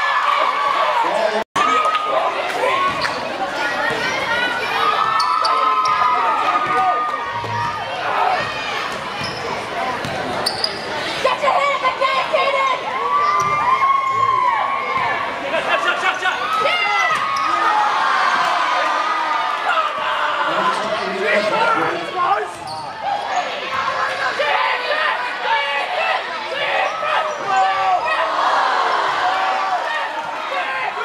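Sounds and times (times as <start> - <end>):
crowd chatter: 0.0 - 31.0
sneakers squeaking on court: 8.4 - 11.1, 22.5 - 23.6.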